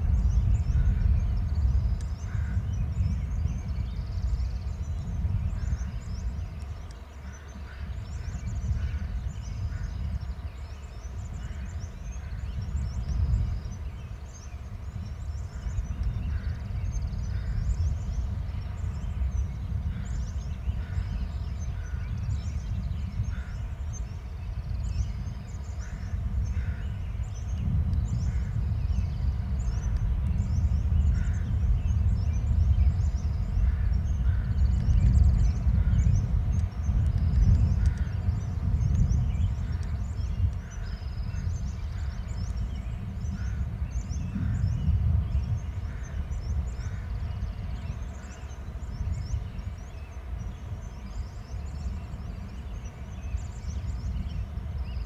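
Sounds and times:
birds chirping: 0.0s - 55.0s.

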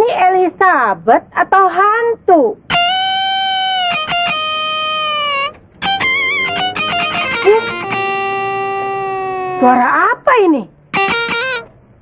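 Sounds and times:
electric guitar: 2.7s - 9.7s, 11.0s - 11.7s.

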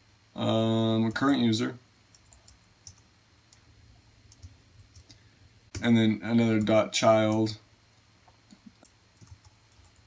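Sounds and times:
computer keyboard clicks: 2.1s - 3.6s, 4.3s - 5.9s, 8.5s - 10.0s.

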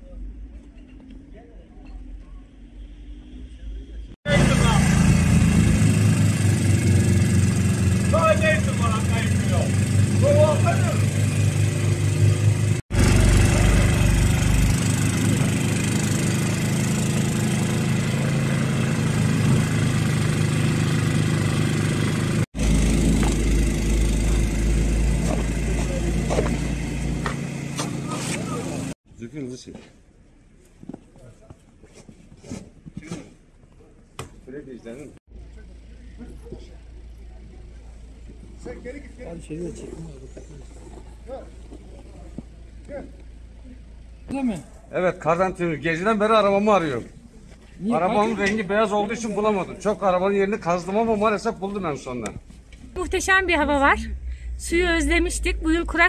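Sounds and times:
snowblower engine running: 4.3s - 29.0s.

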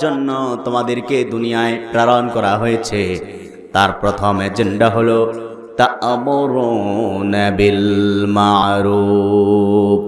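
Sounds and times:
man chanting through microphones: 0.0s - 10.0s.

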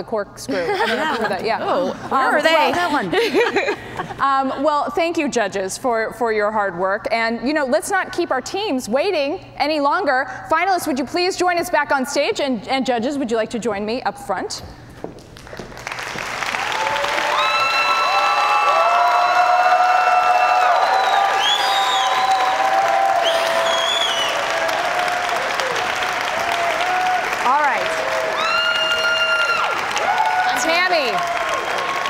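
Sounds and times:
audience applauding: 15.4s - 32.0s
shouts and whoops of cheering: 16.6s - 32.0s.

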